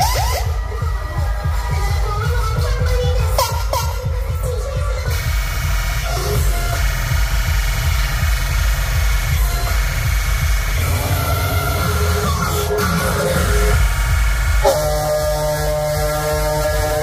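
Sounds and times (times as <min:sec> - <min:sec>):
electronic dance music with heavy bass: 0:00.0 - 0:17.0.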